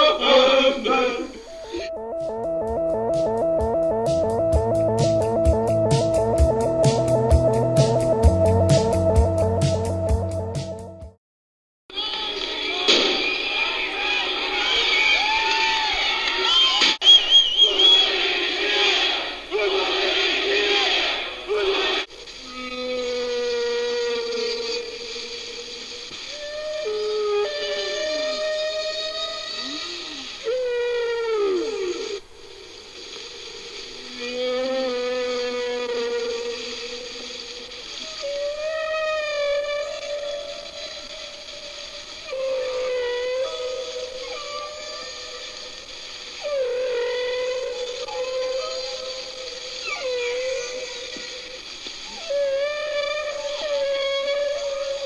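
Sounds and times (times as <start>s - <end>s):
long wailing tone: 1.5s - 8.6s, 26.2s - 32.2s, 34.0s - 45.8s
noisy crowd: 11.9s - 22.1s.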